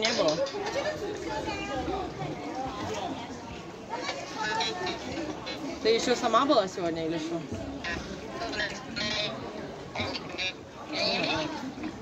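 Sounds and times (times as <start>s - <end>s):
people talking and calling out: 0.0s - 12.0s.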